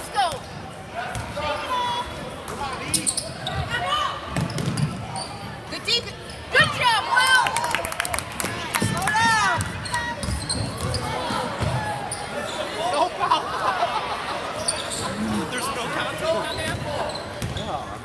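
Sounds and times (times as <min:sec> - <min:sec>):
spectators' voices: 0:05.0 - 0:18.0.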